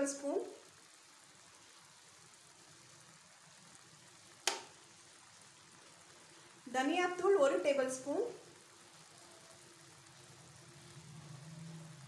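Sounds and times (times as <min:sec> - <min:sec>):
faint sizzle of cooking: 0:00.0 - 0:12.0.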